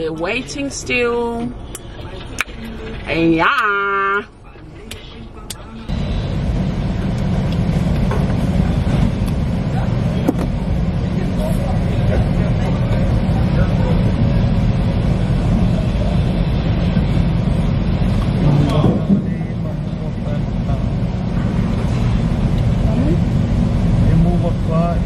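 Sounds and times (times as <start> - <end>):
low engine drone: 0.0 - 25.0.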